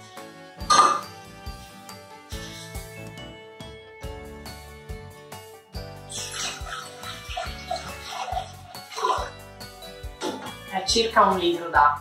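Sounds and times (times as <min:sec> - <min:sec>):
background music with beat: 0:00.0 - 0:11.6
water pouring into metal pot: 0:06.1 - 0:09.5.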